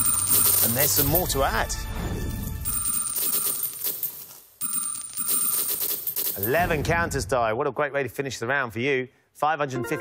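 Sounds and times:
metal coins clattering into tray: 0.0 - 1.5, 2.6 - 6.6.

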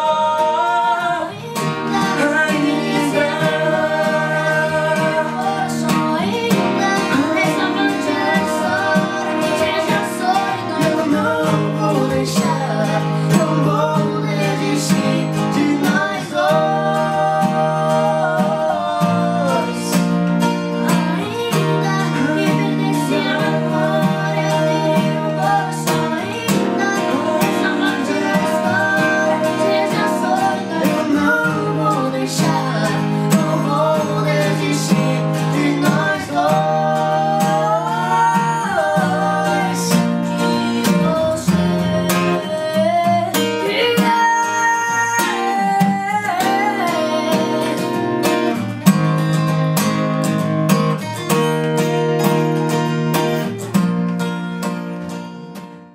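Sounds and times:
men singing: 0.0 - 48.8
acoustic guitars strumming chords: 0.0 - 55.9.

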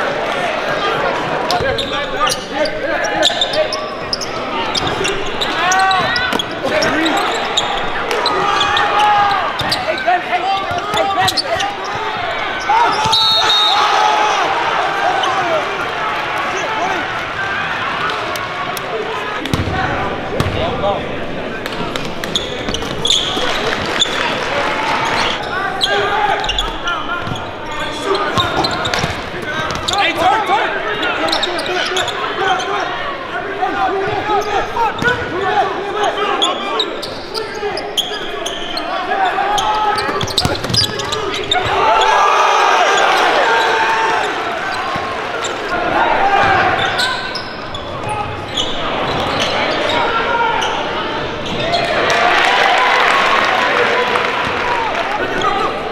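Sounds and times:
crowd and player voices: 0.0 - 55.9
basketball bouncing on court: 19.5 - 19.8, 20.4 - 20.6, 40.0 - 41.6.

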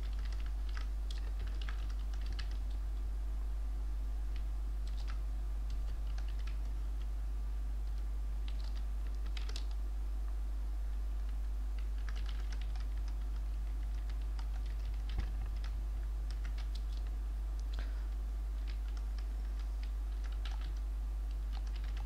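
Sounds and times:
computer keyboard typing: 0.0 - 2.8, 4.3 - 7.1, 7.8 - 9.8, 11.8 - 17.9, 18.6 - 22.0
steady low hum: 0.0 - 22.0.

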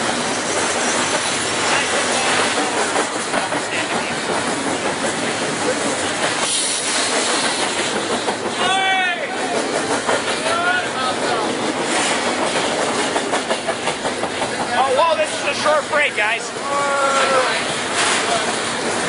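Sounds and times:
freight train wheels on rails: 0.0 - 19.0.

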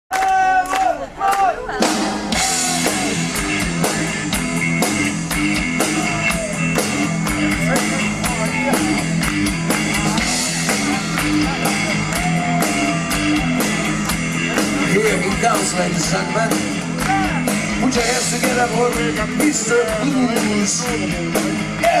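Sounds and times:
person singing or calling out: 1.5 - 3.3
rock band playing: 1.6 - 22.0.

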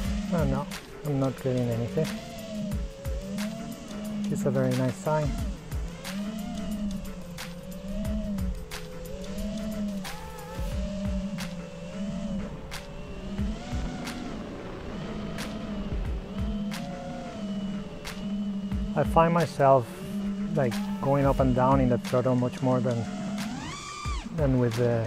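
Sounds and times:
quadcopter motors whining: 0.0 - 25.0.

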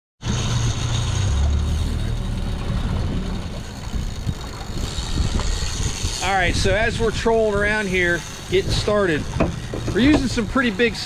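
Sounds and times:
outboard motors running: 0.2 - 11.0.

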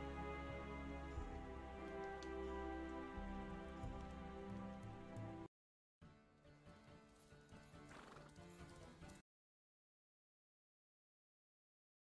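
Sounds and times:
background music: 0.0 - 9.2
hooves clip-clopping: 1.2 - 5.5, 6.7 - 9.2.

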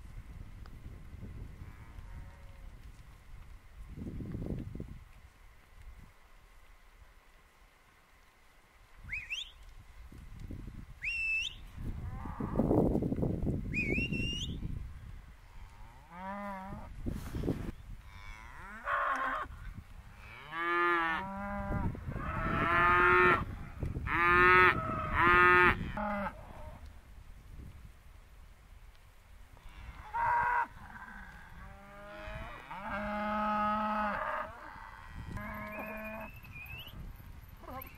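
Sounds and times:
short rising whistles: 9.1 - 9.6, 11.0 - 11.7, 13.7 - 14.6, 35.7 - 37.0.

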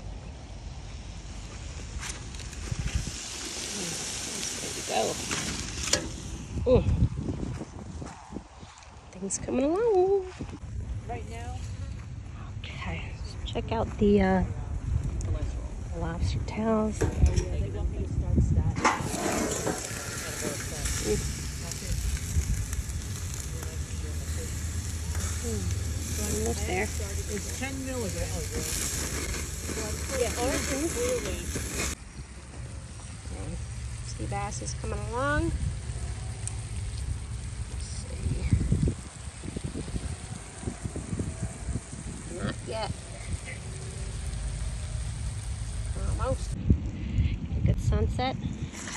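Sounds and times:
gas grill rumble: 0.0 - 8.1, 13.7 - 48.9
seafood sizzling on grill: 0.6 - 6.8, 18.8 - 46.6
wind buffeting microphone: 2.3 - 32.4, 33.5 - 48.9.

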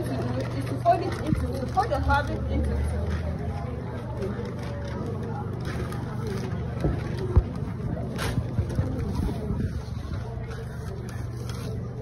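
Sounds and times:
faint voices: 0.0 - 12.0
paper rustling: 4.2 - 12.0.

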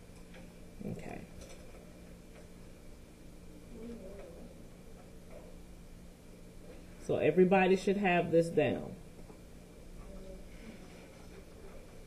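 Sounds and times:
murmured voice: 3.7 - 4.6.

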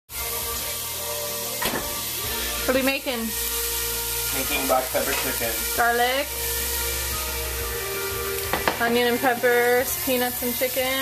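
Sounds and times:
garlic sizzling in a pan: 0.1 - 11.0.

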